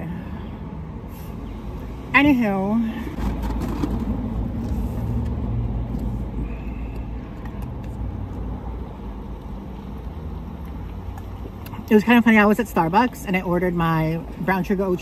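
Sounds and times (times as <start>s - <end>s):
car engine hum inside cabin: 0.0s - 15.0s.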